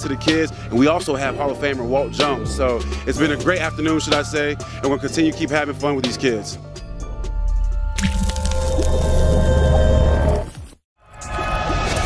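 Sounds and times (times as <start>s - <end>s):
heavy bass swell music: 0.0s - 10.5s
wet squishy splash: 8.0s - 9.2s.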